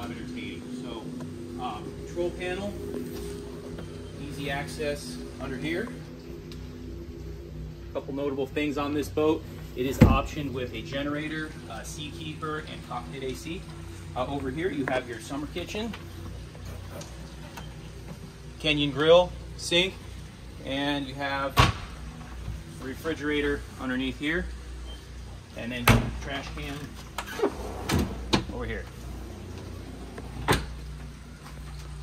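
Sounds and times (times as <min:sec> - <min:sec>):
low steady hum: 0:00.0 - 0:32.0.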